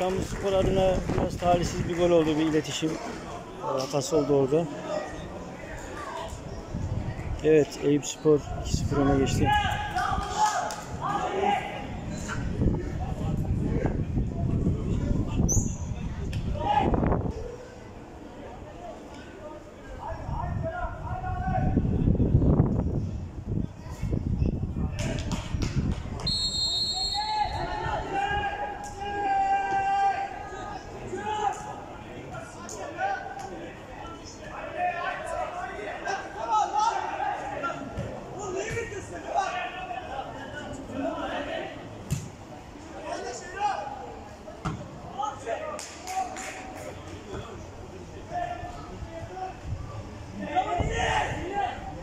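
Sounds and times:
referee's whistle: 26.2s - 27.7s.

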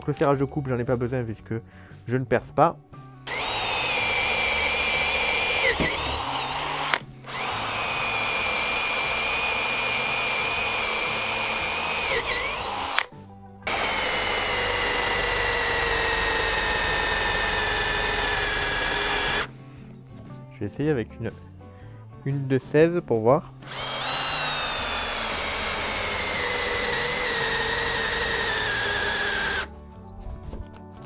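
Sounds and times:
drill boring into wood: 3.3s - 19.5s, 23.6s - 29.7s.

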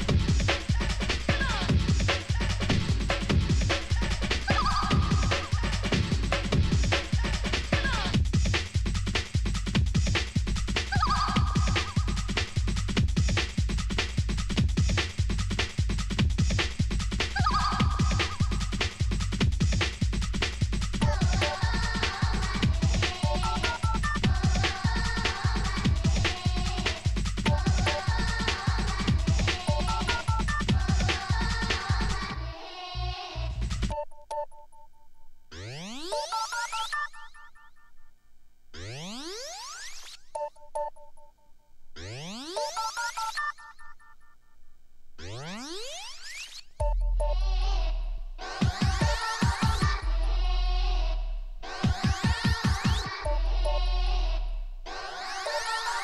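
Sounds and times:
breakbeat drums and bass: 0.0s - 32.5s, 33.1s - 34.0s, 46.8s - 54.8s.

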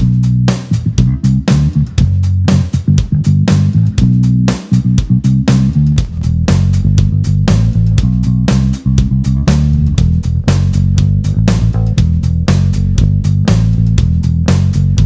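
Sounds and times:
plucked electric bass: 0.0s - 15.0s.

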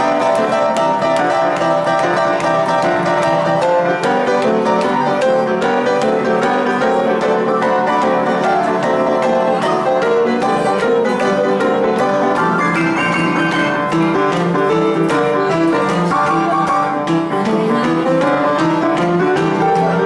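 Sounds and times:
upright piano playing boogie-woogie: 0.0s - 20.0s.

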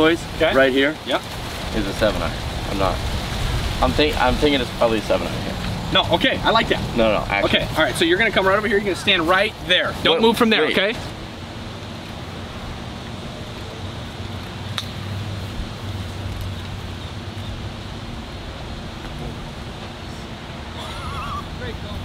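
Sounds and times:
steady wind: 0.0s - 22.0s.

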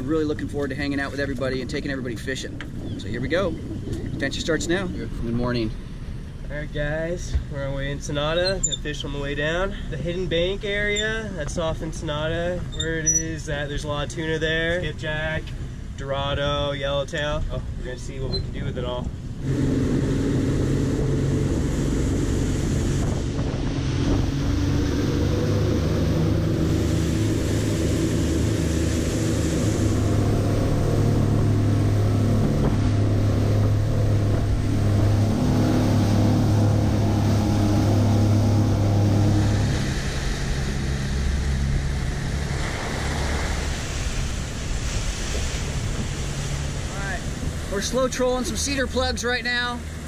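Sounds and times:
wind on microphone: 0.0s - 6.3s, 18.1s - 48.4s
outboard motors running: 0.0s - 14.2s, 14.9s - 50.0s
wake water rushing: 0.0s - 50.0s.

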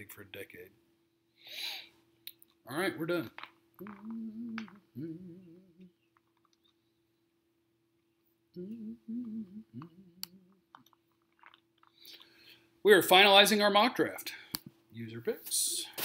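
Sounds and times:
faint steady tone: 3.7s - 12.8s
man humming: 3.8s - 6.0s, 8.5s - 10.7s.

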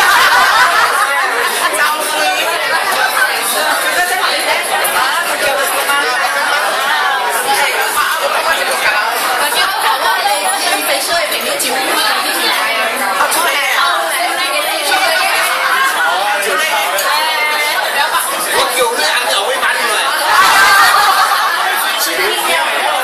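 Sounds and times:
group of people chattering: 0.0s - 23.0s.

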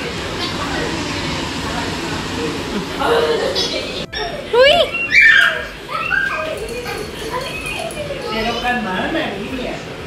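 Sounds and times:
people talking: 0.0s - 5.2s, 5.8s - 10.0s
small dog whining and yipping: 4.9s - 6.4s.

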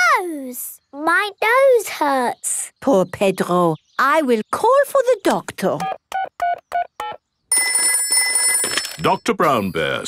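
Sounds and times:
telephone bell ringing: 7.5s - 9.6s.

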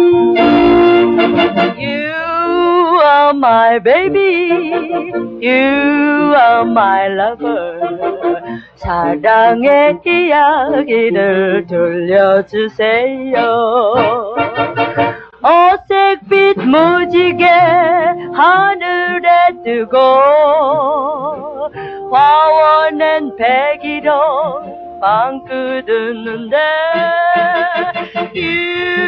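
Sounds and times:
band accompaniment: 0.0s - 2.0s, 13.4s - 15.4s, 16.0s - 29.0s
woman singing pop song: 1.8s - 7.8s, 8.4s - 14.4s, 15.4s - 27.8s.

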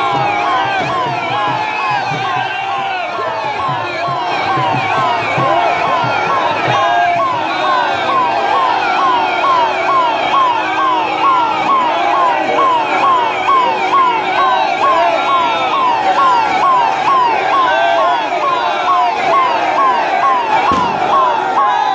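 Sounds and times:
vehicle siren rising and falling: 0.0s - 21.9s.

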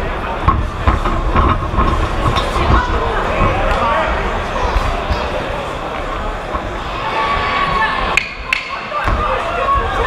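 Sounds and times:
crowd shouting: 6.7s - 10.0s.

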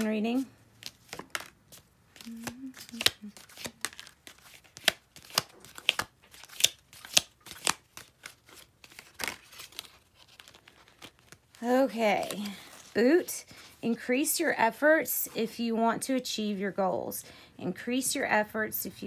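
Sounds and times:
cardboard cards shuffled and dealt: 0.0s - 13.0s.

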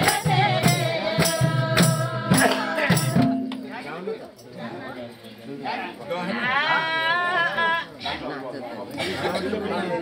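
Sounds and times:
voices chattering: 3.7s - 10.0s.

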